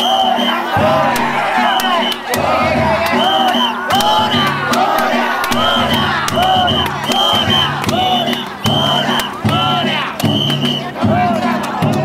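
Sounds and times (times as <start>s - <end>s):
high whistle blasts: 0.0s - 4.4s, 5.5s - 9.4s, 10.2s - 10.9s
crowd chanting in rhythm: 0.0s - 12.0s
drum and gong music: 0.5s - 12.0s
sharp percussive strikes: 0.5s - 12.0s.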